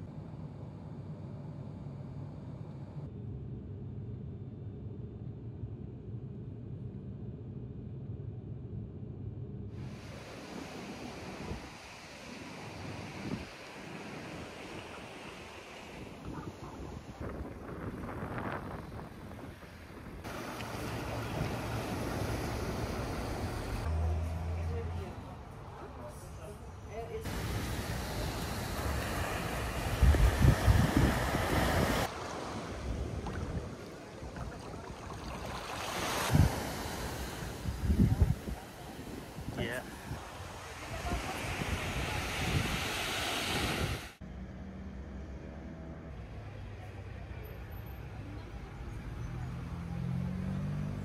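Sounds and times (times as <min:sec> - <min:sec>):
wind on microphone: 0:09.8 - 0:23.8, 0:27.3 - 0:44.2
surf washing on shore: 0:09.8 - 0:23.9, 0:27.2 - 0:44.2.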